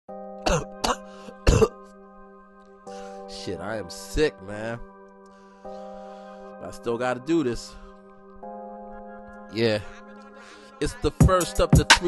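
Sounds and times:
held chord of background music: 0.1s - 12.0s
man coughing: 0.4s - 1.8s.

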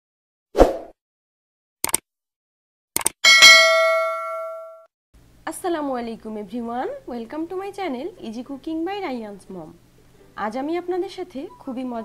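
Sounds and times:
bell ding: 3.2s - 4.9s.

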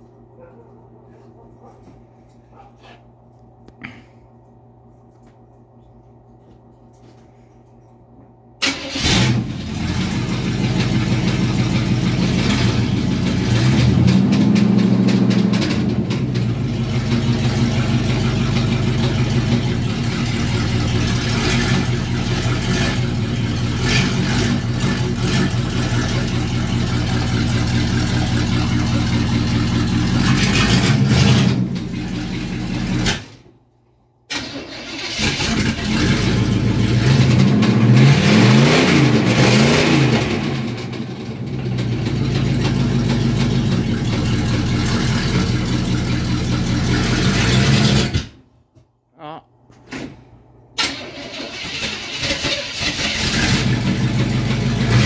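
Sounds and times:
truck engine revving: 8.7s - 33.2s, 35.0s - 48.3s, 50.8s - 55.0s.

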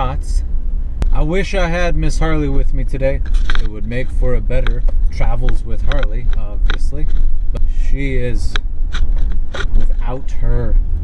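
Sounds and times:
man talking: 0.0s - 0.4s, 1.1s - 8.6s, 9.8s - 10.8s
vehicle engine and road noise: 0.0s - 11.0s.

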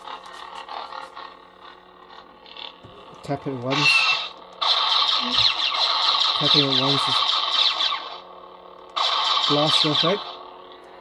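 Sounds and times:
lightsaber low hum: 0.0s - 11.0s
lightsaber blaster crackle: 3.7s - 8.2s, 8.9s - 10.3s.

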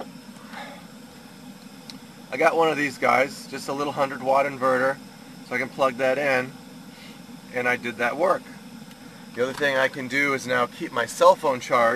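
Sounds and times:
low background hum: 0.0s - 11.9s.

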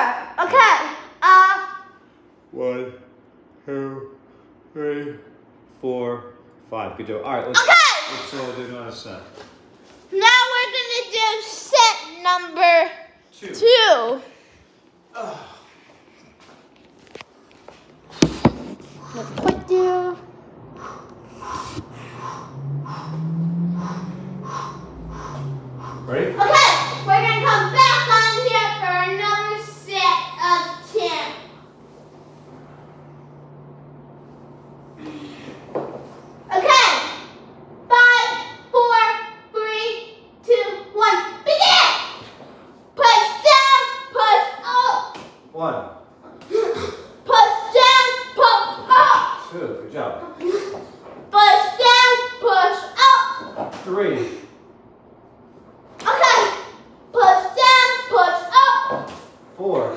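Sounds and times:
low steady hum: 0.0s - 59.9s
person breathing hard: 20.7s - 26.2s
child calling out: 26.4s - 29.1s.

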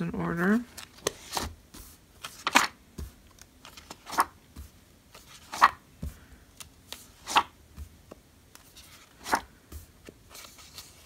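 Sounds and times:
paper pages rustling: 0.6s - 11.0s.

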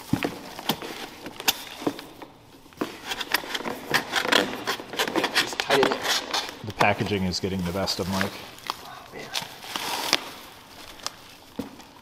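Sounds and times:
paper packing fill rustling: 2.8s - 12.0s.

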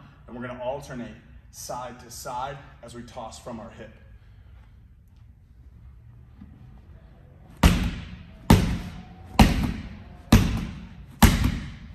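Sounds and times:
faint low hum: 0.0s - 11.9s
ball thudding against wall: 7.6s - 11.9s.

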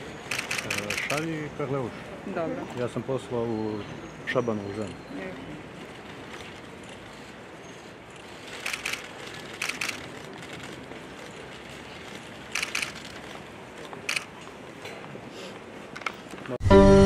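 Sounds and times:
outdoor background hiss: 0.0s - 16.6s
camera shutters clicking: 0.3s - 1.3s, 8.2s - 10.9s, 12.0s - 13.4s, 14.1s - 14.3s.

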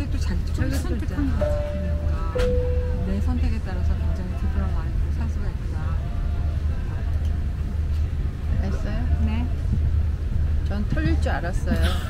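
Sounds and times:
airliner cabin hum: 0.0s - 12.0s.

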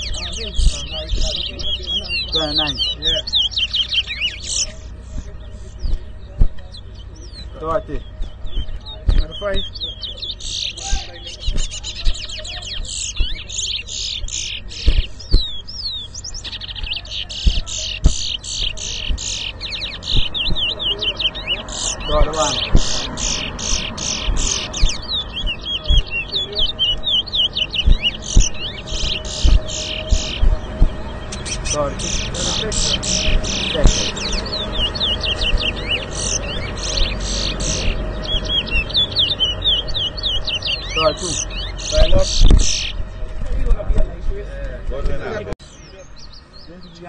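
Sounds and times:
finches singing: 0.0s - 47.0s.

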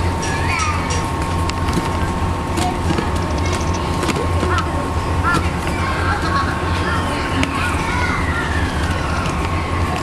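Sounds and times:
low background rumble: 0.0s - 10.0s.

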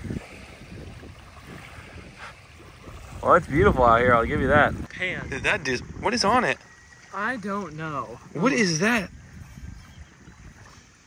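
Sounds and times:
small waves lapping on shore: 0.0s - 11.0s
wind buffeting microphone: 0.0s - 11.0s.

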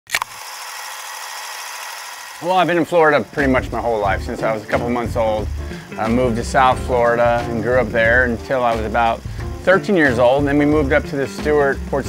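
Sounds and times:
sharp clicks: 0.1s - 0.8s.

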